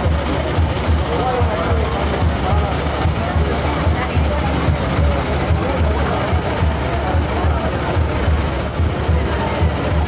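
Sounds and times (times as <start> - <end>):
low drum beat: 0.0 - 10.0.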